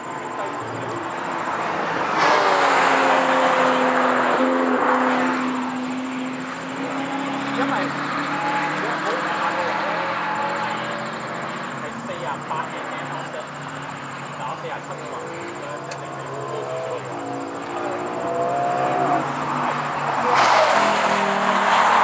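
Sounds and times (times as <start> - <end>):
race car engines: 0.0 - 22.0
rush of engine and tyre noise: 0.0 - 22.0
engine accelerating through gears: 13.2 - 22.0.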